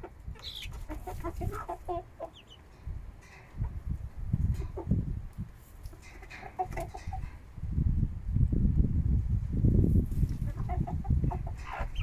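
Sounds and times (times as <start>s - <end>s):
hens clucking softly: 0.0s - 3.8s, 4.4s - 7.4s, 10.1s - 12.0s.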